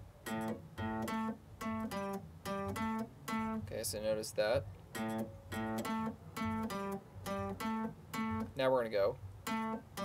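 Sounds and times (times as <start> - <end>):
electric guitar blues riff: 0.2 - 8.7, 9.4 - 10.0.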